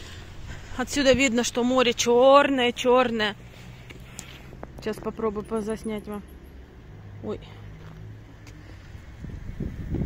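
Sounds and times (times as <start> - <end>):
low outdoor rumble: 0.0 - 10.0.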